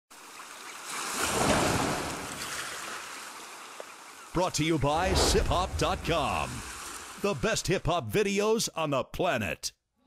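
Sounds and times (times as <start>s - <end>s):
ocean wave washing in: 1.2s - 3.0s, 5.0s - 7.4s.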